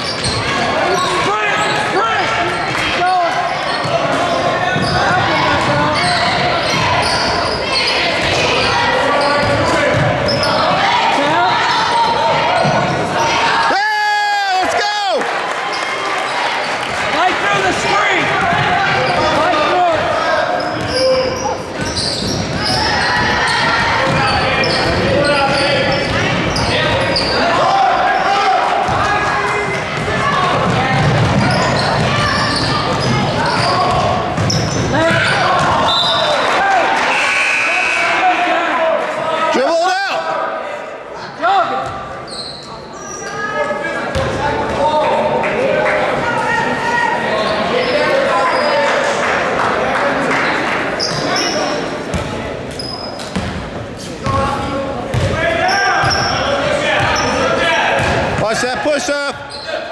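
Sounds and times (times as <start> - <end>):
spectator chatter and calls: 0.0 - 59.9.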